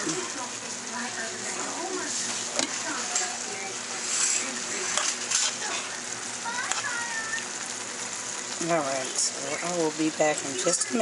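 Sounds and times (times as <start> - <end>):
meat and onions sizzling: 0.0 - 11.0.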